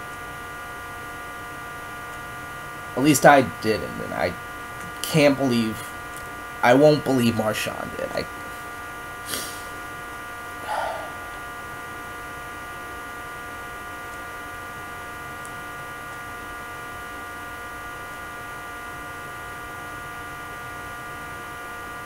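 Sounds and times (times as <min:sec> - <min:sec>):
electrical hum with hiss: 0:00.0 - 0:22.0.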